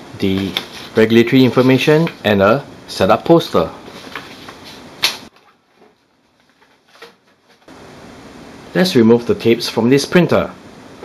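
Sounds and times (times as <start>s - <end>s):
paper flyers rustling: 0.2s - 2.2s, 3.8s - 7.7s.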